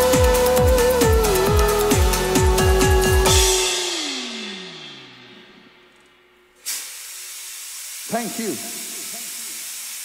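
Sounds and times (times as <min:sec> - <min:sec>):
steady hiss: 0:06.5 - 0:10.0.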